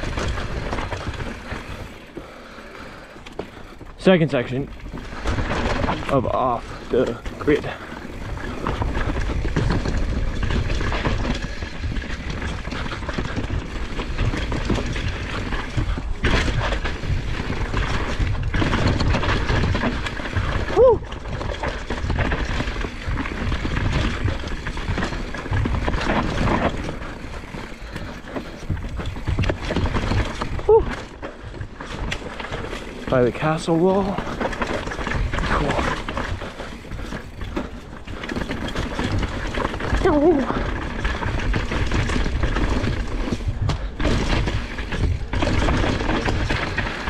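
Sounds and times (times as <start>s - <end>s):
bike rattling over bumps: 0.0s - 47.0s
bike tyres rolling over dirt: 0.0s - 47.0s.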